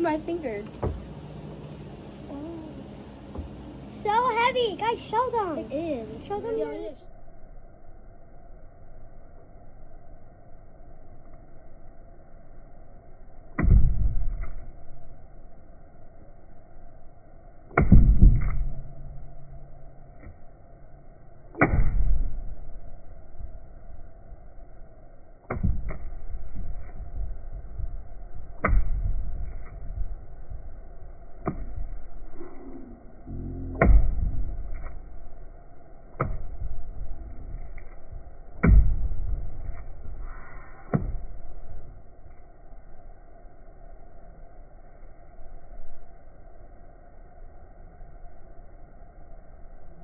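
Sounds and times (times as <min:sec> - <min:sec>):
low rumble: 0:00.0 - 0:50.0.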